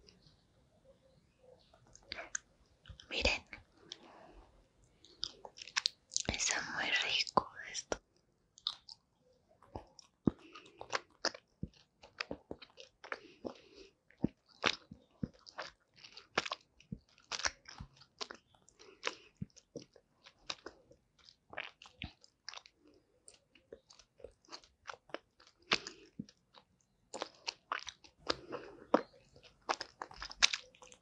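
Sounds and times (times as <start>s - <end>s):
chewing gummy candy: 1.6s - 8.0s, 8.6s - 31.0s.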